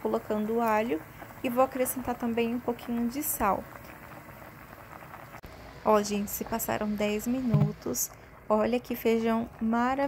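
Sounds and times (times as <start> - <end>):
beans boiling in pressure cooker: 0.0 - 10.0.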